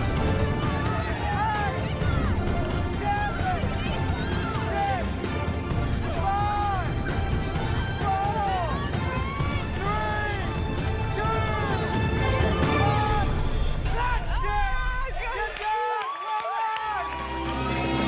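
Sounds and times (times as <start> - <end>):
tense music score: 0.0 - 15.3
people shouting: 0.0 - 18.0.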